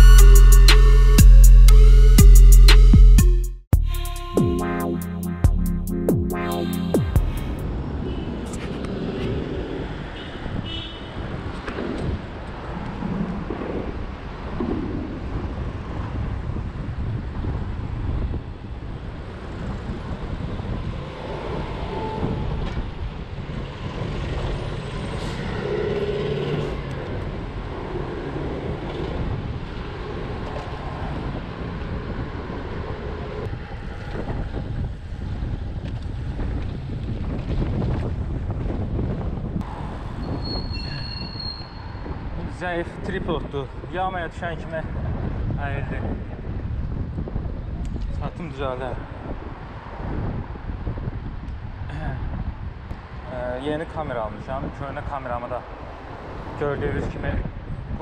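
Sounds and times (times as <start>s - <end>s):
vehicles passing: 6.5s - 58.0s
wind noise on microphone: 7.0s - 58.0s
short high-pitched squeal: 40.2s - 42.0s.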